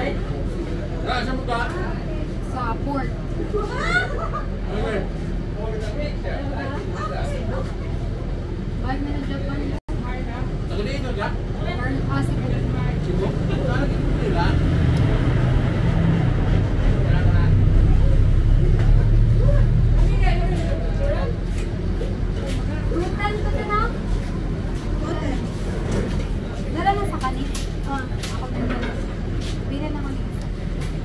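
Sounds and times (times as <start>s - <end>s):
background chatter of voices: 0.0s - 31.0s
bus engine rumble: 0.0s - 31.0s.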